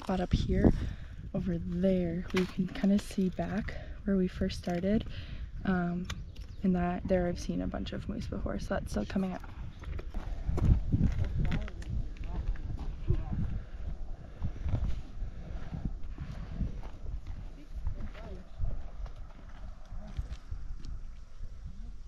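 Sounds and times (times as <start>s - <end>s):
footsteps on gravel trail: 9.2s - 13.6s, 14.3s - 21.4s.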